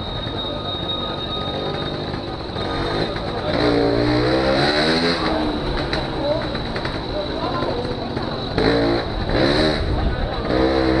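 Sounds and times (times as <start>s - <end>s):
moped engine revving: 1.1s - 11.0s.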